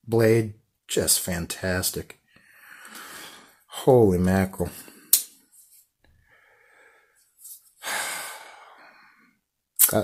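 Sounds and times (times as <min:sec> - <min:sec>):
man sighing: 0:07.8 - 0:09.3.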